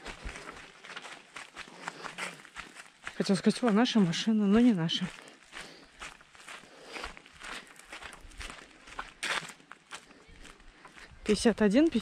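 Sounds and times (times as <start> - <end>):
footsteps on gravel path: 0.0 - 12.0.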